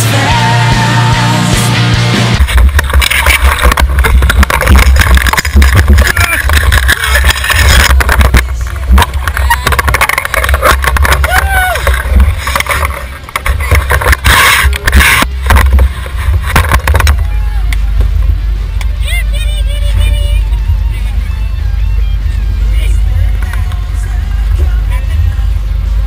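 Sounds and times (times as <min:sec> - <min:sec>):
people's voices: 0:02.8 - 0:25.8.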